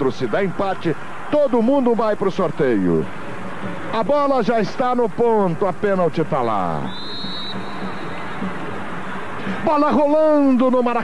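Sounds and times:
stadium crowd noise: 0.0s - 11.0s
referee's whistle: 6.8s - 8.5s.

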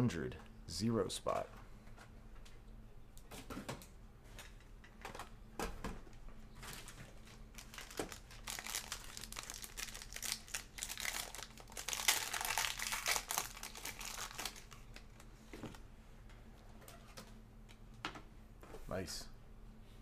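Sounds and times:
foil wrapper crinkling: 6.7s - 15.3s.

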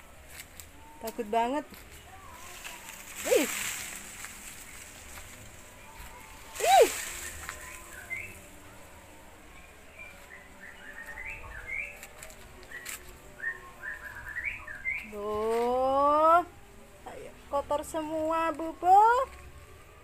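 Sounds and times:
small birds chirping: 1.0s - 8.6s.

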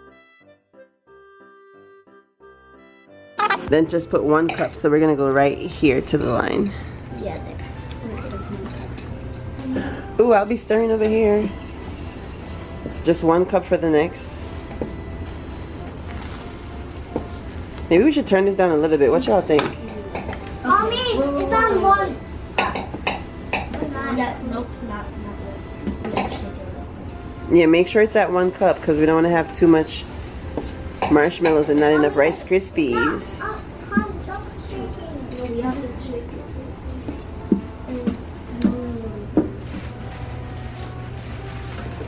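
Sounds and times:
background music: 0.0s - 4.3s, 5.9s - 42.0s.

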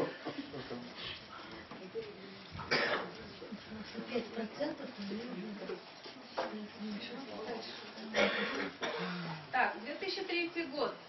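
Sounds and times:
faint murmured speech: 0.0s - 9.6s
short cough: 2.7s - 3.1s, 8.1s - 9.3s.

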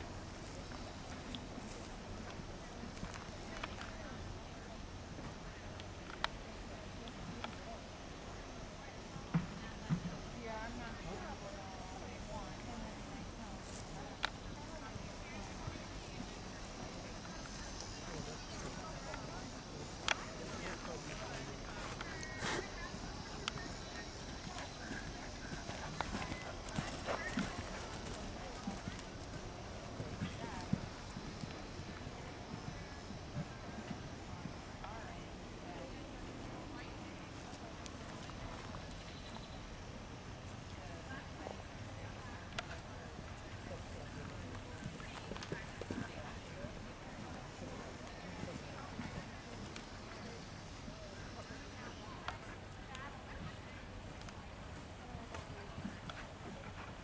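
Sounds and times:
faint voices: 0.0s - 57.0s
people talking: 0.0s - 57.0s
horse hoofbeats on sand: 23.5s - 31.5s.

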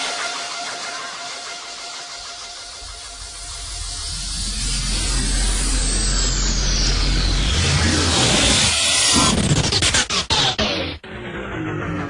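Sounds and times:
white-noise sweep falling in pitch: 0.0s - 12.0s
deep bass drone: 2.2s - 12.0s.

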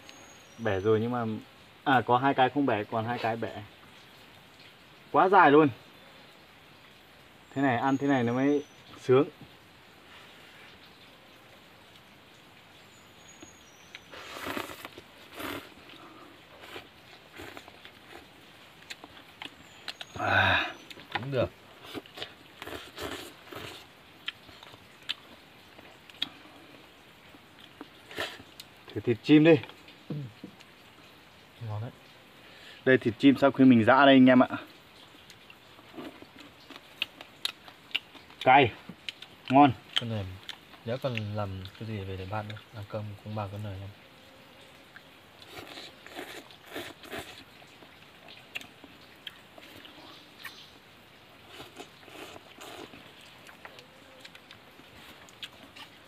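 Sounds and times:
slurping and chewing: 13.9s - 21.2s, 21.8s - 26.6s, 27.3s - 28.8s, 35.2s - 41.8s, 44.9s - 50.6s, 51.3s - 56.0s
people slurping noodles: 14.1s - 18.2s, 21.8s - 23.9s.

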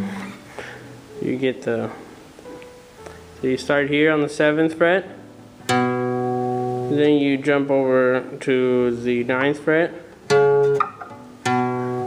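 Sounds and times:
guitar note plucked: 5.6s - 7.3s, 9.4s - 12.0s.

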